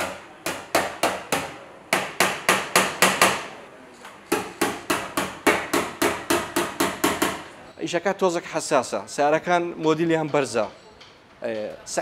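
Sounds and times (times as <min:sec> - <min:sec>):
hammer tapping sheet metal: 0:00.0 - 0:03.5, 0:04.3 - 0:07.5.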